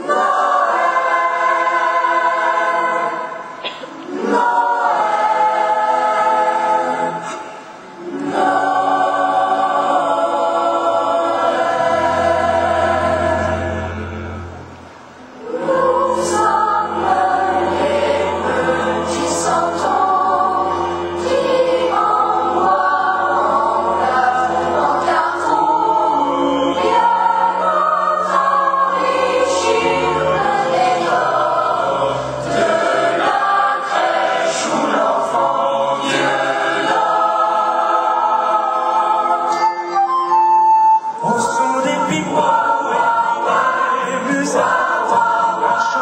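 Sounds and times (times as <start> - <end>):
choir singing: 0.0 - 46.0
low held note: 13.1 - 15.4.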